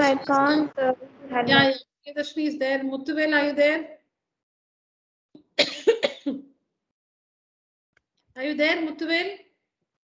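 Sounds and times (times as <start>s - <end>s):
person coughing: 5.6s - 6.5s.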